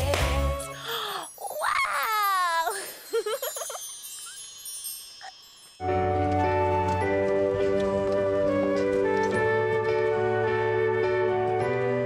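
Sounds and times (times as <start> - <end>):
magic sparkle of high chimes: 0.8 - 6.1.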